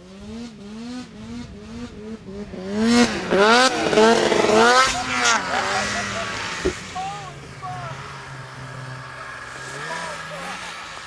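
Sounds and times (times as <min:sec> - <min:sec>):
distant snowmobile engine: 0:00.0 - 0:11.0
faint voices: 0:04.7 - 0:11.0.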